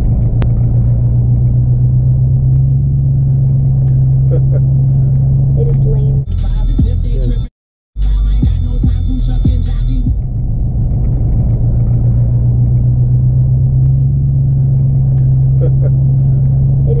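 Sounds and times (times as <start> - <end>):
car rumble inside cabin: 0.0 - 17.0
rap music: 5.6 - 10.3.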